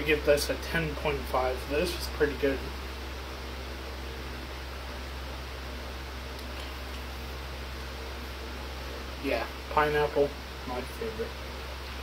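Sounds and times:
room noise hum and hiss: 0:00.0 - 0:12.0.

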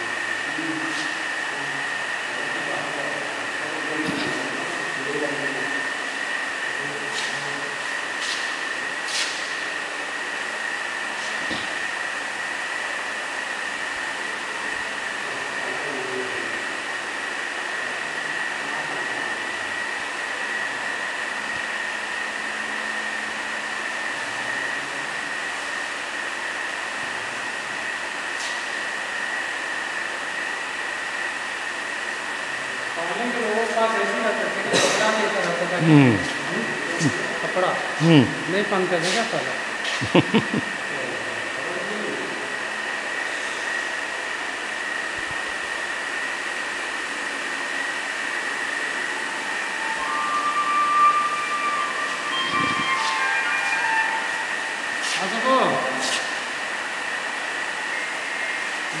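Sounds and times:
high-pitched whine: 0:00.0 - 0:59.0.

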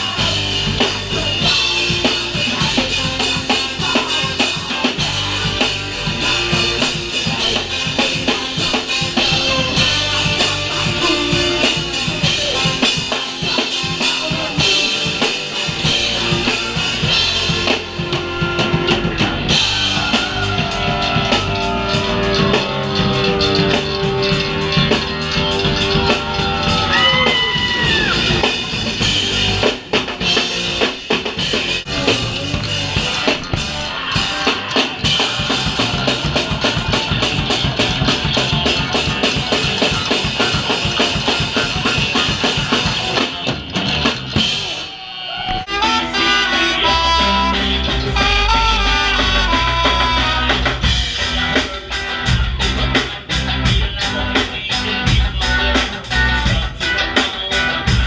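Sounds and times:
rapid drumming: 0:00.0 - 0:46.8, 0:47.5 - 0:58.0
ska-punk band playing: 0:00.0 - 0:58.0
sliding horn lines: 0:45.4 - 0:50.9.

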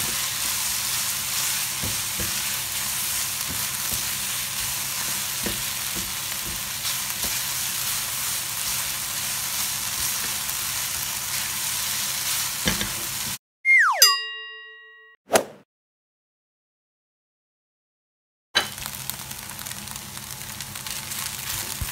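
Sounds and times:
noodles sizzling in a wok: 0:00.0 - 0:13.4, 0:18.6 - 0:21.9
falling tone with ringing chime: 0:13.7 - 0:15.2.

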